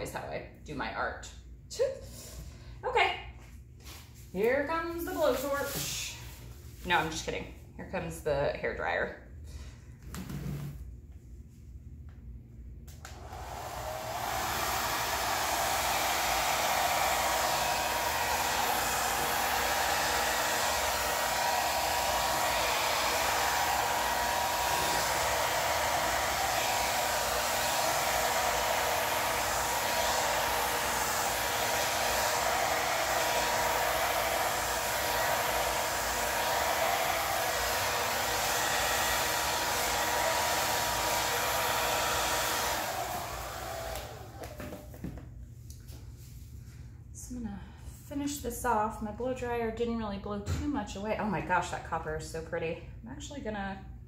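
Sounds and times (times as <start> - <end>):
hair dryer running: 3.8 - 7.3, 12.9 - 46.0.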